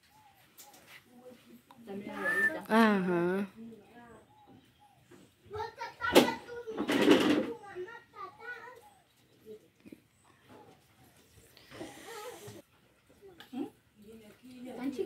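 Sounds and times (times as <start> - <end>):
indistinct talk: 1.1 - 10.7
child's voice: 5.5 - 9.6.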